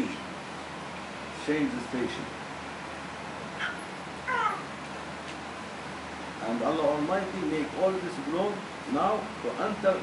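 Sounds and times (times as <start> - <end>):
room hiss: 0.0 - 10.0
high-pitched animal-like call: 3.6 - 4.8.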